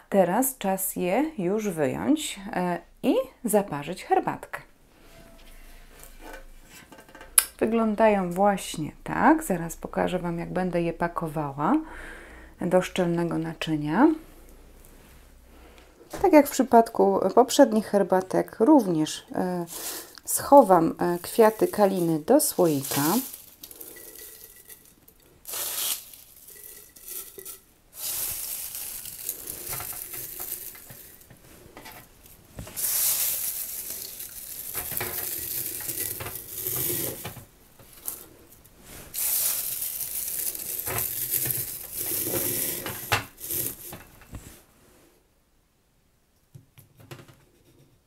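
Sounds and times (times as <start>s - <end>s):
dry flowers rustling and crackling: 19.5s - 44.6s.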